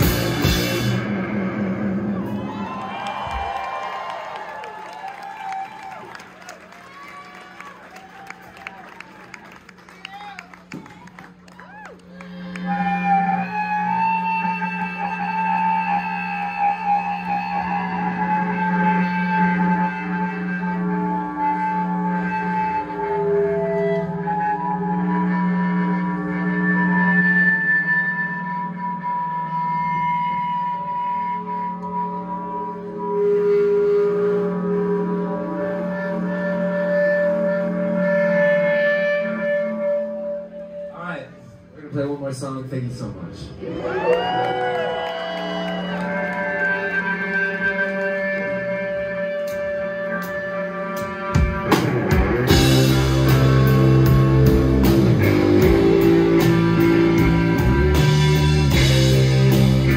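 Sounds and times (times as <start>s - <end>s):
sustained electric guitar tones: 10.4s - 42.0s, 43.2s - 59.9s.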